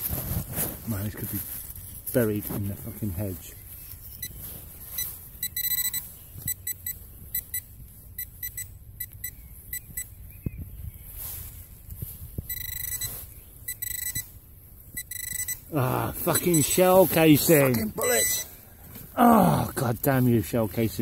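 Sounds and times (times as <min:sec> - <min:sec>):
soil scraping: 0:00.0 - 0:06.1, 0:15.3 - 0:21.0
pinpointer short high beeps: 0:04.2 - 0:10.2, 0:12.5 - 0:16.9, 0:17.6 - 0:18.6.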